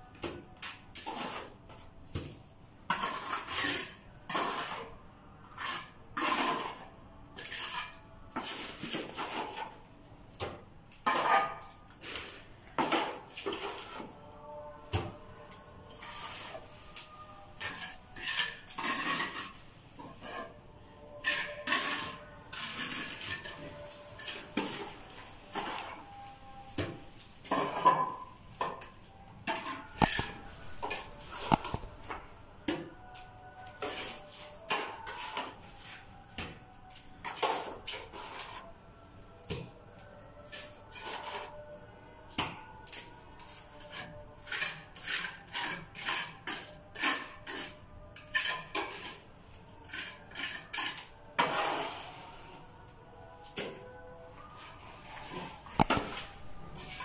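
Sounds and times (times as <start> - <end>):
trowel scraping and clinking: 17.6 - 20.6, 29.5 - 32.2, 55.2 - 57.0.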